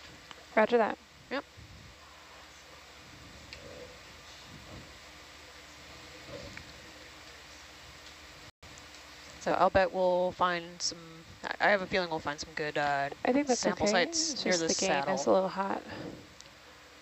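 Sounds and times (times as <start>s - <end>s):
faint steady hiss: 0.0s - 17.0s.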